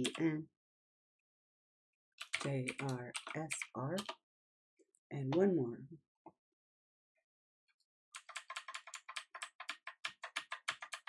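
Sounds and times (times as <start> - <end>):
keyboard key tapping: 2.2 - 4.2, 8.2 - 11.0.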